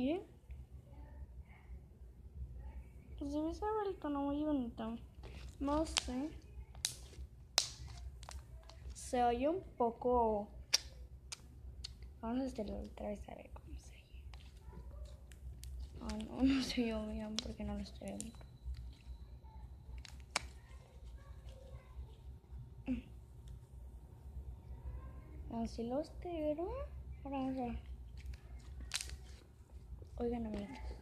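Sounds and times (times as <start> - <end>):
slime clicking and crackling: 5.2 - 9.0, 10.6 - 12.9, 14.3 - 19.2, 19.9 - 21.8, 27.5 - 29.5
slime squeezed with wet pops: 10.6 - 12.1, 20.0 - 20.8, 28.2 - 29.4.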